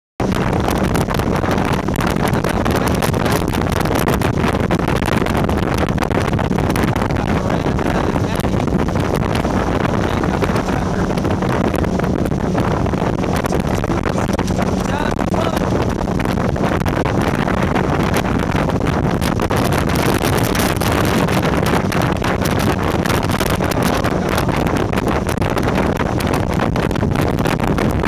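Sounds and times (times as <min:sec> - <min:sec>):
motorboat engine hum: 0:00.2 - 0:28.0
rushing water: 0:00.2 - 0:28.0
wind buffeting on microphone: 0:00.2 - 0:28.0.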